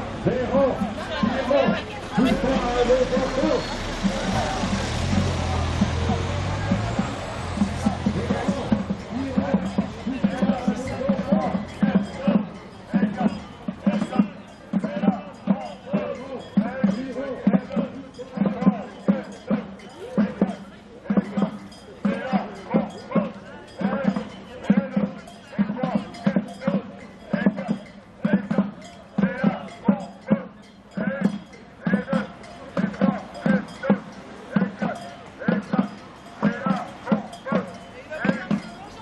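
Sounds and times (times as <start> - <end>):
drum beating march rhythm: 0.0 - 39.0
marchers chanting: 0.0 - 39.0.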